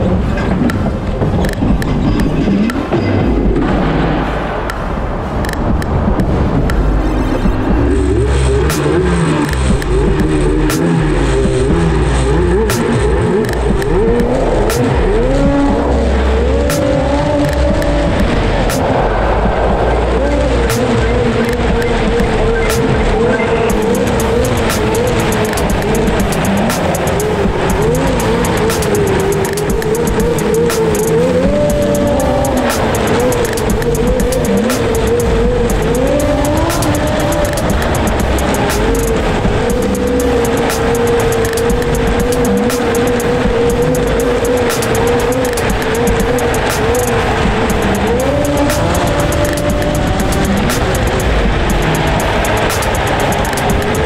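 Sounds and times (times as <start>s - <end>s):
background music with a beat: 0.0s - 54.0s
snowmobile engine running: 5.4s - 54.0s.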